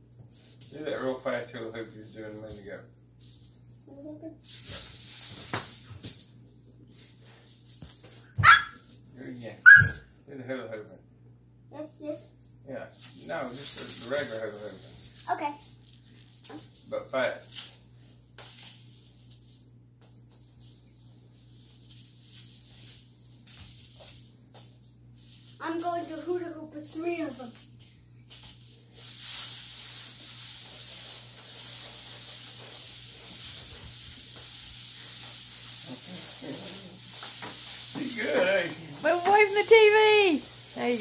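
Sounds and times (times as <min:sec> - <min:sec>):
hula hoop swishing: 0:00.0 - 0:10.0, 0:12.1 - 0:41.0
small dog barking: 0:08.4 - 0:08.8, 0:09.6 - 0:10.0.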